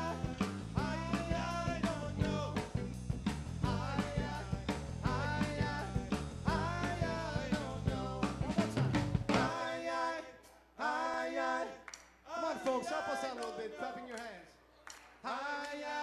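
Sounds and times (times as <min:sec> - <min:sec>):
person singing: 0:00.0 - 0:02.9, 0:03.6 - 0:10.2
bass: 0:00.0 - 0:09.6
drum kit: 0:00.0 - 0:09.6.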